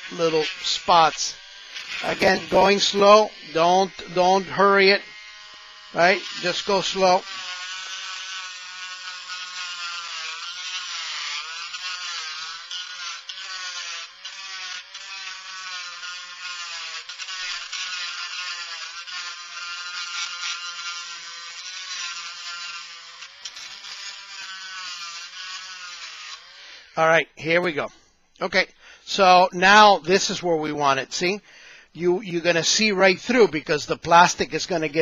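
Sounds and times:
rotary tool grinding plastic: 0:00.0 - 0:27.0.

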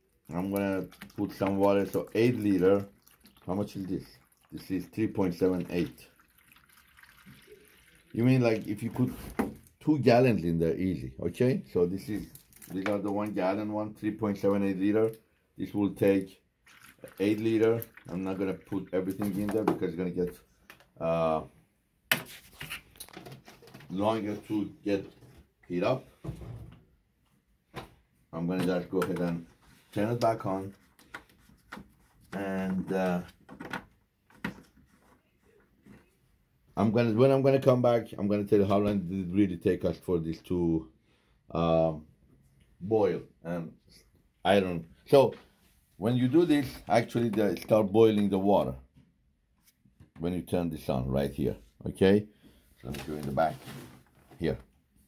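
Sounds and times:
water trickling through a funnel: 0:00.0 - 0:09.0, 0:12.2 - 0:13.1, 0:16.0 - 0:19.6.

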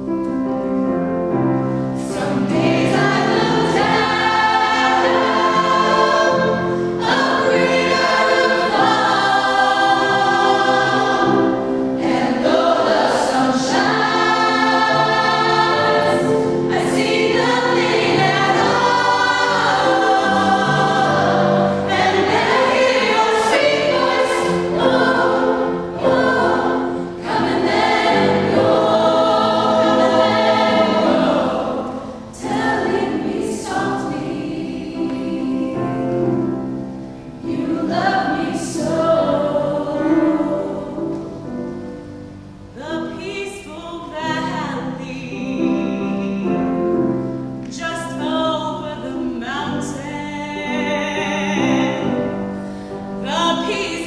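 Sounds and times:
choir singing sustained chords: 0:01.2 - 0:54.0.

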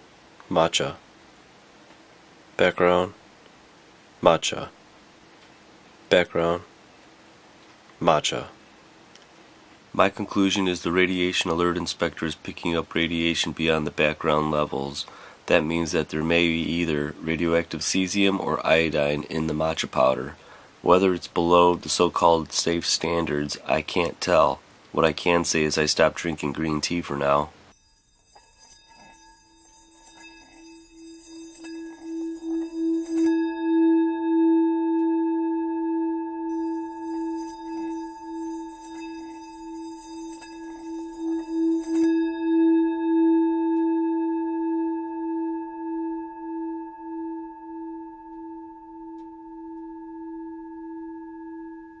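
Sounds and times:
singing bowl ringing tone: 0:26.2 - 0:52.0.

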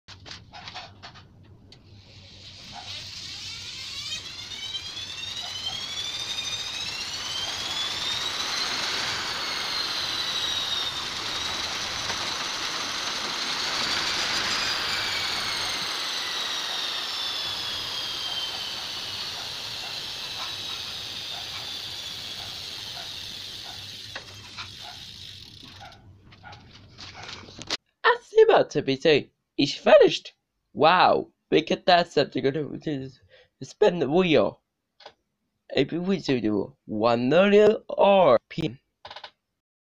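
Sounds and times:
bicycle chain and wheel whirring: 0:00.1 - 0:27.8.

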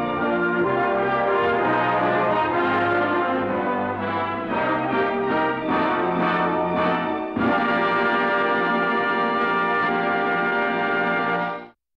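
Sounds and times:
orchestral music: 0:00.0 - 0:11.8.

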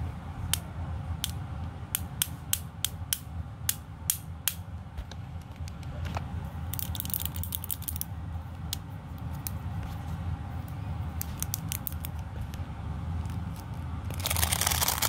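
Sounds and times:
magnetic stones clicking: 0:06.8 - 0:08.1, 0:11.2 - 0:12.2.

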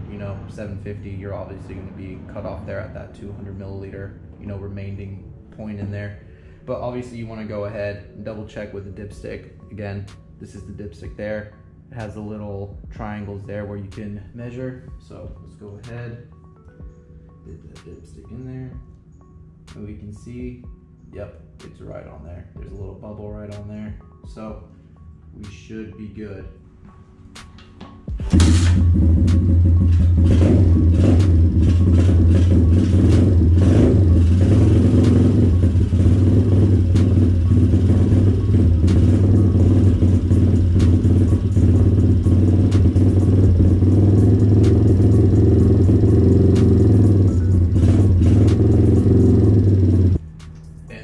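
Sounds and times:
motorbike engine starting and idling: 0:28.1 - 0:50.2.

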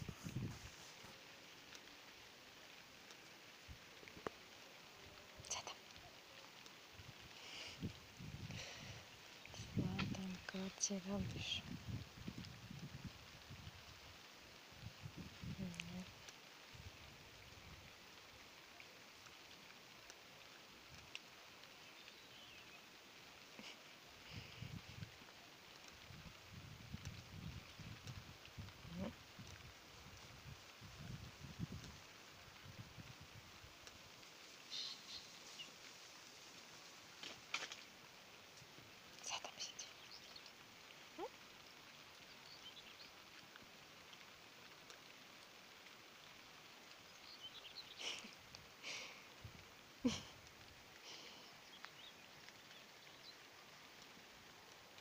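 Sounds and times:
faint light rain: 0:00.0 - 0:55.0
water drip ticks: 0:00.3 - 0:55.0.

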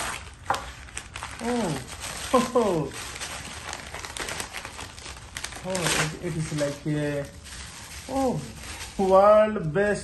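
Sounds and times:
wrapping paper rustling and crinkling: 0:00.0 - 0:10.0.

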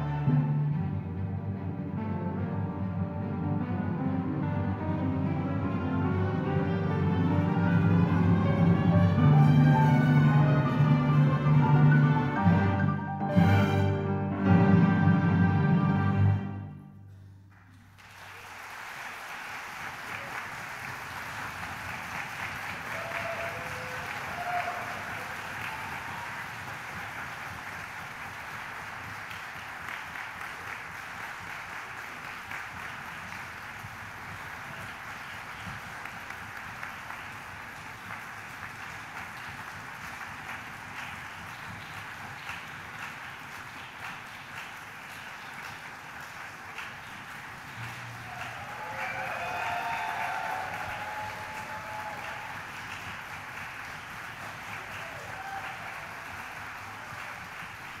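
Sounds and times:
audience applauding: 0:17.5 - 0:58.0
people cheering: 0:18.0 - 0:58.0.

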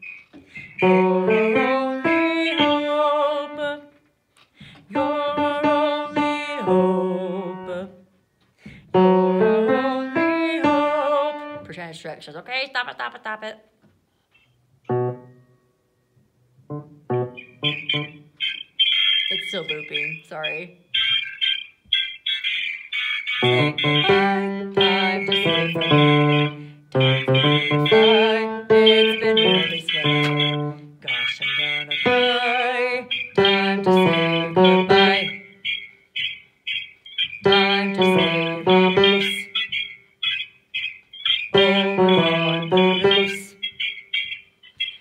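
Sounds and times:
piano chords: 0:00.8 - 0:03.8, 0:04.9 - 0:07.9, 0:08.9 - 0:11.8, 0:14.9 - 0:18.3, 0:23.4 - 0:31.1, 0:32.0 - 0:35.6, 0:37.4 - 0:39.7, 0:41.5 - 0:43.6.

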